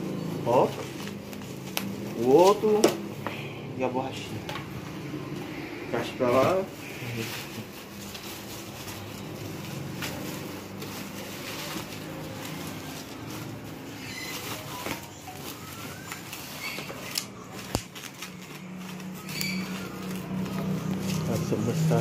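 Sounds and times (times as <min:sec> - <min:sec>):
plastic wrap rustling and crinkling: 0:00.0 - 0:03.2, 0:06.0 - 0:22.0.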